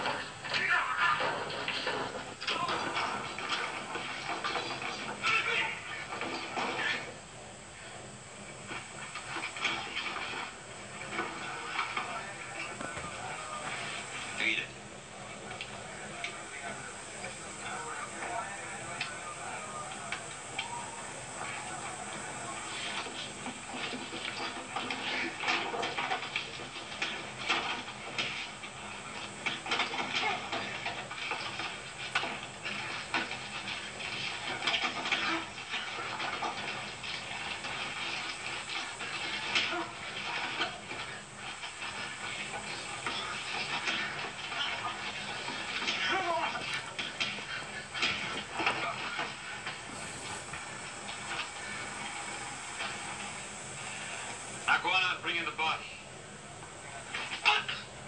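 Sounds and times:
film music on television: 0.0s - 58.0s
indistinct voices: 0.0s - 58.0s.

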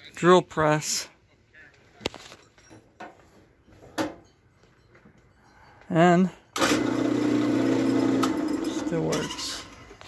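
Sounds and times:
person speaking: 8.6s - 9.7s.

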